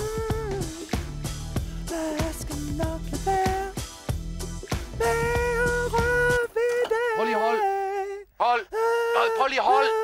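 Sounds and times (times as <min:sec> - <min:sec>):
bass and drums backing: 0:00.0 - 0:06.5
man singing: 0:04.9 - 0:10.0.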